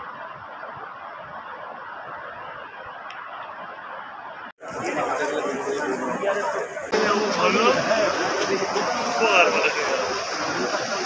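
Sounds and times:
men chattering: 4.6s - 11.0s.

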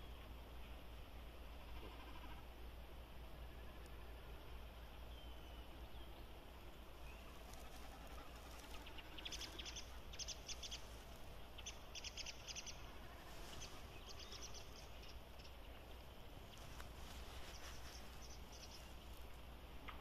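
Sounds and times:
faint low hum and hiss: 0.0s - 20.0s
small bird calling: 3.5s - 19.4s.

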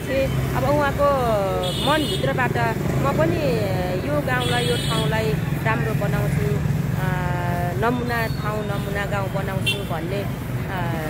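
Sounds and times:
motorcycles passing: 0.0s - 11.0s
street traffic hum: 0.0s - 11.0s
woman talking: 0.0s - 11.0s.

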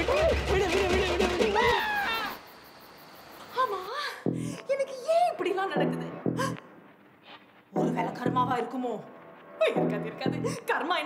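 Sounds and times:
woman yelling: 0.0s - 2.4s.

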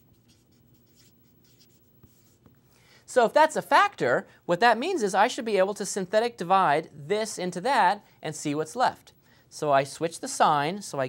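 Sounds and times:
marker scratching on a board: 0.0s - 2.6s.

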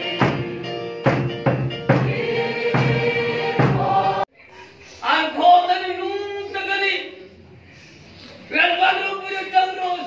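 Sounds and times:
instrumental accompaniment with steady beat: 0.0s - 4.2s
congregation singing a hymn: 0.0s - 4.3s.

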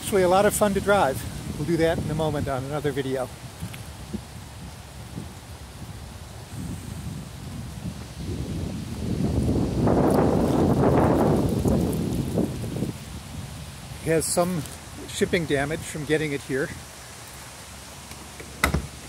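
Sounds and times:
leaves rustling: 0.0s - 19.0s
wind gusting: 0.0s - 19.0s.

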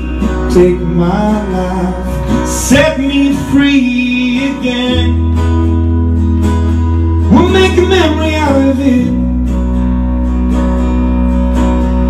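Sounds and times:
strummed guitar: 0.0s - 12.0s.

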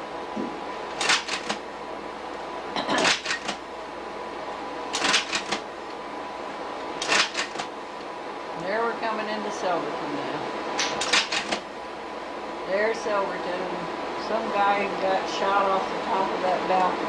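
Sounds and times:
slide projector clicking: 0.9s - 1.6s, 3.0s - 3.6s, 4.9s - 6.0s, 7.0s - 7.7s, 10.8s - 11.6s.

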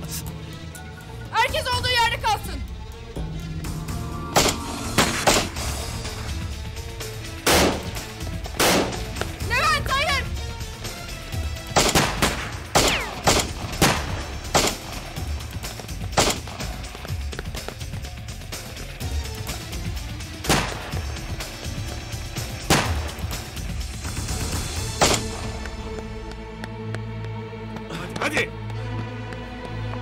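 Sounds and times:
background music: 0.0s - 30.0s
pistol shots: 7.5s - 8.0s, 8.6s - 9.1s, 11.7s - 15.0s, 16.2s - 16.7s, 20.5s - 21.0s, 22.6s - 23.3s, 24.9s - 25.4s.

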